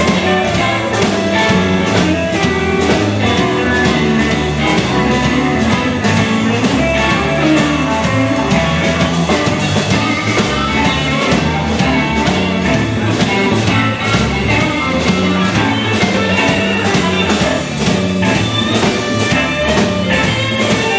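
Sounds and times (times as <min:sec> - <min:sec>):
drum kit steady beat: 0:00.0 - 0:20.9
electric guitars: 0:00.0 - 0:20.9.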